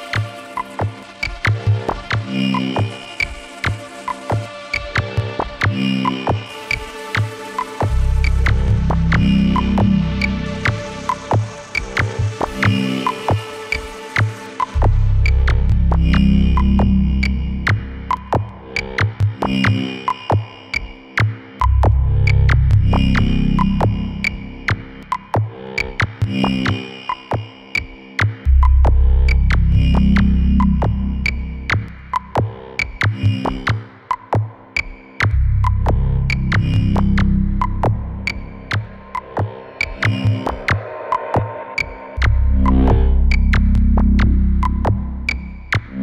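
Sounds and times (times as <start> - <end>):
low bass drone: 7.8 - 12.4, 14.7 - 18.7, 21.6 - 25.1, 28.5 - 32.4, 35.3 - 40.8, 41.7 - 46.0.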